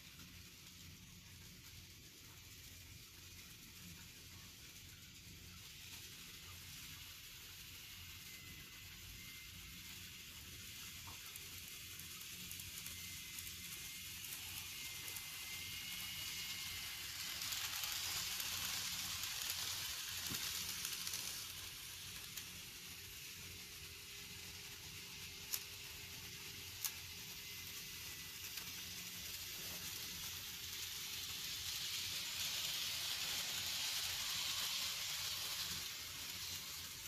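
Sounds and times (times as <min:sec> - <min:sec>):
model train wheels on rail: 0:00.0 - 0:37.0
thin motor whine: 0:00.0 - 0:37.0.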